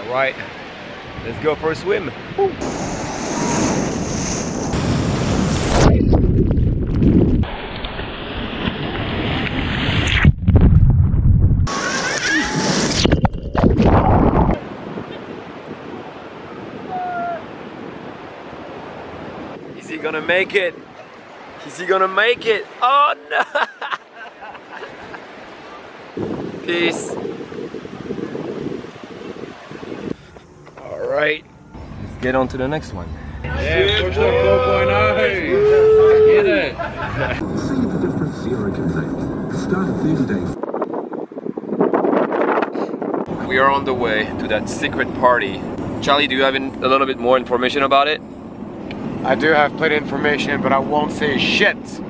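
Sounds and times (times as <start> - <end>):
ocean surf breaking: 0.0 - 6.6, 7.4 - 10.2, 11.7 - 13.0, 13.6 - 30.2, 33.4 - 39.5
wind buffeting microphone: 0.6 - 22.6, 24.9 - 30.7, 35.5 - 52.0.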